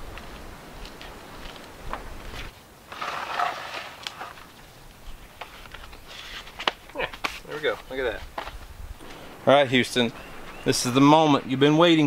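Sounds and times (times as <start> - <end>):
soil rustling: 0.0 - 9.4.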